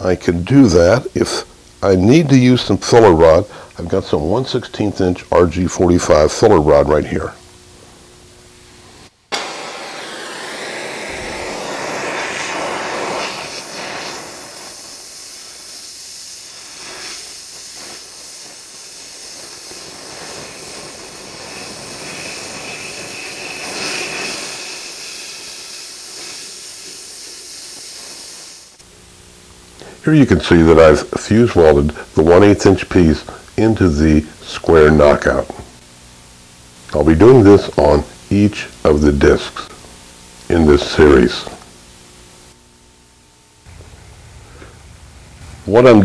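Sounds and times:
welding torch flame hissing: 0.0s - 46.0s.

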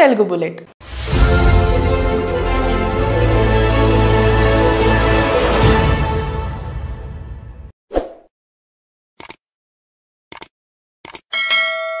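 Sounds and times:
bell chime ringing: 11.3s - 12.0s.

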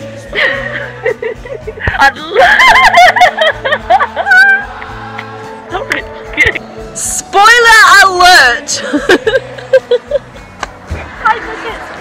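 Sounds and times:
woman laughing loudly: 0.4s - 4.7s, 8.8s - 10.3s.

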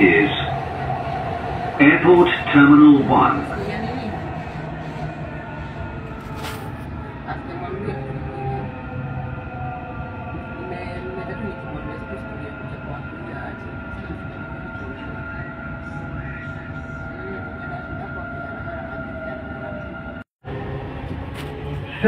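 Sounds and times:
train running rumble and whine: 0.0s - 22.0s.

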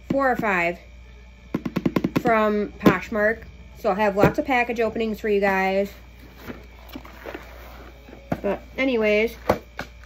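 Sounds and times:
steady low hum: 0.0s - 10.0s
cardboard box handling noises: 6.1s - 8.6s.

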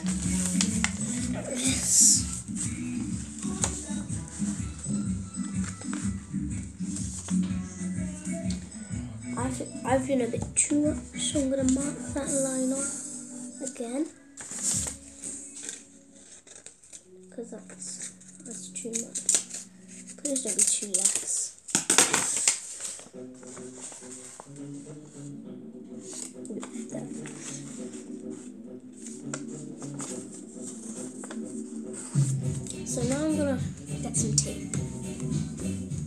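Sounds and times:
paper rustling and crinkling: 0.0s - 4.6s, 13.6s - 25.0s, 26.0s - 32.4s
music with held notes: 0.0s - 21.3s, 22.7s - 36.0s.

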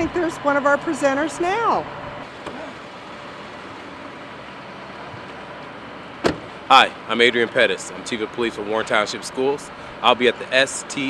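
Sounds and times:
steady outdoor hiss: 0.0s - 11.0s
car door shutting: 2.3s - 2.8s, 6.2s - 6.6s.

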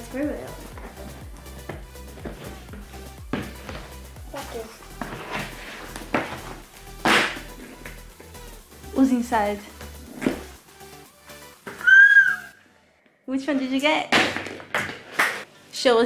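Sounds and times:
background music with steady beat: 0.0s - 12.7s.

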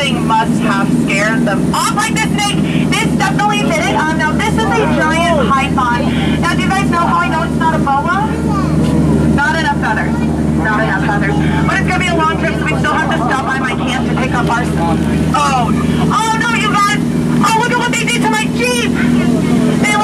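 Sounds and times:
boat motor humming: 0.0s - 20.0s
voices: 0.0s - 20.0s.

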